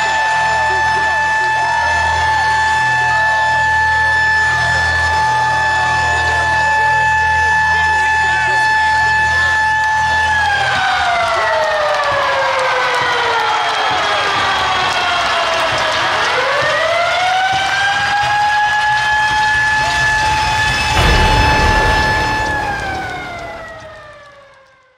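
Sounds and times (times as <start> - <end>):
deep rumble: 20.1 - 24.5.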